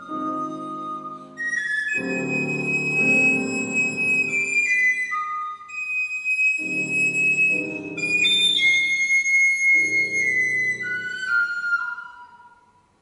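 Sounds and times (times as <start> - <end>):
piano accompaniment: 0.0 - 12.7
recorder melody: 0.0 - 12.7.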